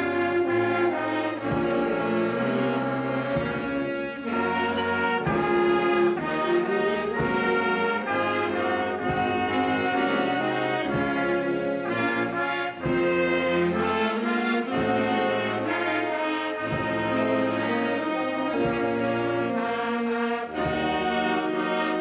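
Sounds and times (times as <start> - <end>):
wind band playing a hymn: 0.0 - 22.0.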